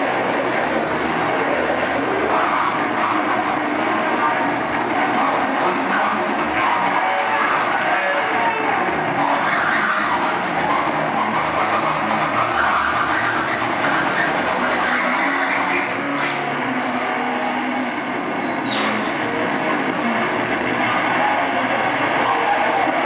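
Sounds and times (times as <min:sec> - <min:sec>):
distorted harsh noise music: 0:00.0 - 0:23.0
high whistling tone: 0:12.5 - 0:19.1.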